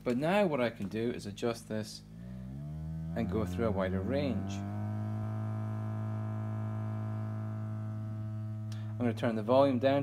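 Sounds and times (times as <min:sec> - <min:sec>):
buzzy low tone from loudspeaker: 0:01.9 - 0:10.0.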